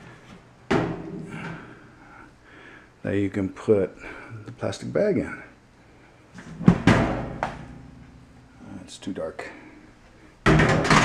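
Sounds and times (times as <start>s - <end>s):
hollow thuds on metal trash can: 10.4s - 11.0s.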